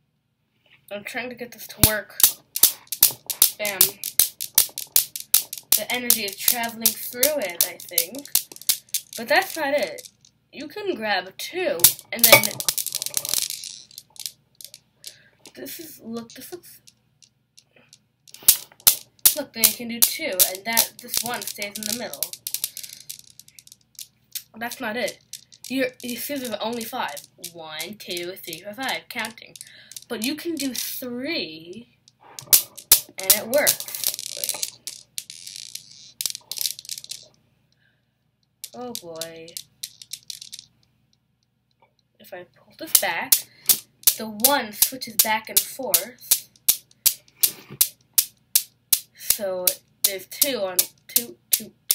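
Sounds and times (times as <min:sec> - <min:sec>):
steel balls clacking: 0:01.6 - 0:37.4, 0:38.6 - 0:40.9, 0:42.8 - 0:51.9.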